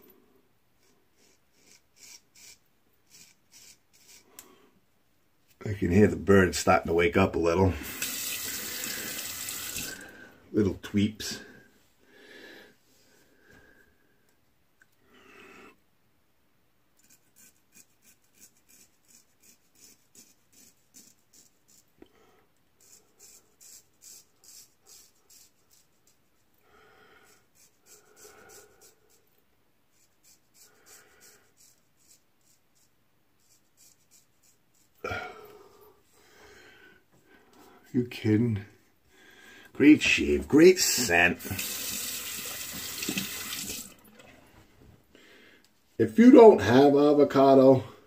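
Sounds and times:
razor scraping stubble: 0:01.2 - 0:04.4, 0:17.0 - 0:21.9.

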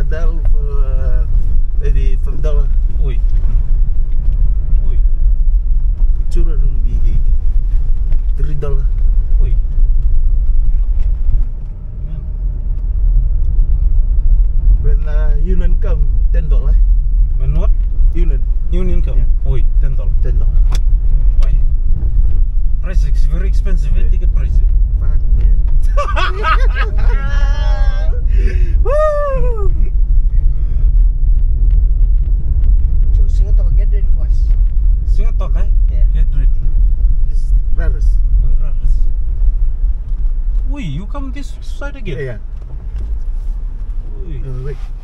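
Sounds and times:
car engine and road noise: 0:00.0 - 0:45.0
indistinct voices talking: 0:22.9 - 0:30.9.

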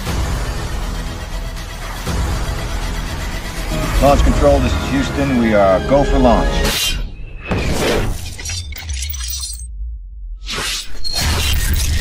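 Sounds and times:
glassy shattering impact: 0:07.6 - 0:09.7.

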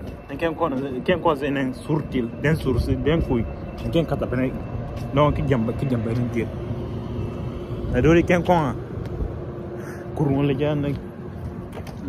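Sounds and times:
street traffic rumble: 0:00.0 - 0:12.0
man speaking: 0:00.3 - 0:06.6, 0:10.0 - 0:11.0.

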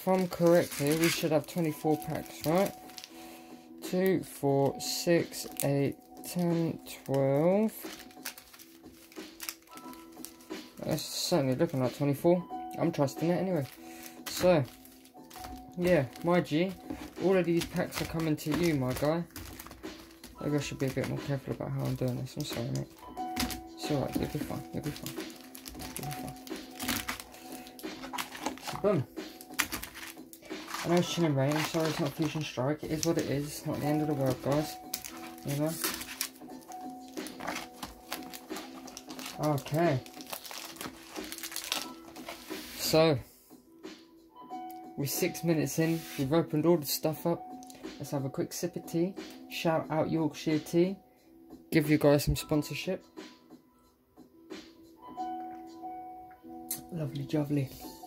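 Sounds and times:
foil wrappers crinkling: 0:00.0 - 0:03.2, 0:05.3 - 0:12.2, 0:12.8 - 0:42.9
faint background music: 0:00.0 - 0:58.0.

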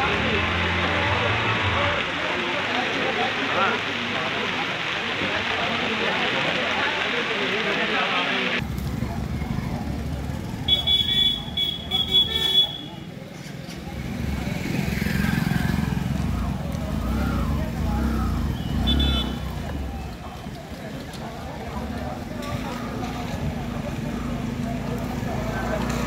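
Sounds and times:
passing traffic rumble: 0:00.0 - 0:26.0.

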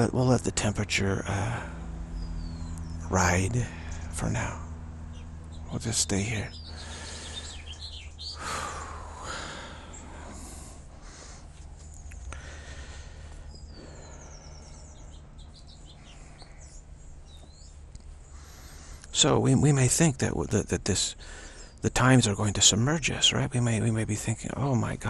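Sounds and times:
birds chirping: 0:00.0 - 0:25.0
steady low hum: 0:00.0 - 0:25.0.

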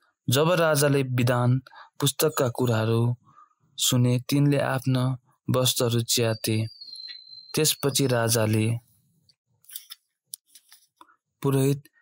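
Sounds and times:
short breath: 0:03.2 - 0:03.6.

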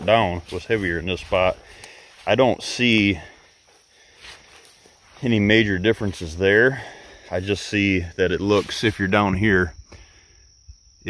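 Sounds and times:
man's voice: 0:00.0 - 0:01.6, 0:02.2 - 0:03.4, 0:05.2 - 0:09.8
soft rustle: 0:00.0 - 0:07.7
faint outdoor background: 0:00.0 - 0:11.0.

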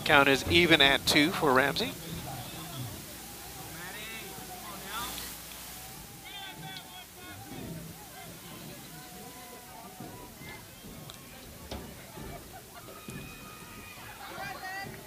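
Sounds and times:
distant voices shouting: 0:00.0 - 0:15.0.

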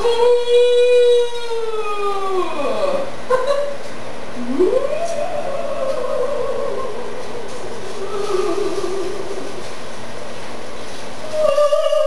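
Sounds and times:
steady low rumbling noise: 0:00.0 - 0:12.0
ghostly wail sliding in pitch: 0:04.4 - 0:09.7.

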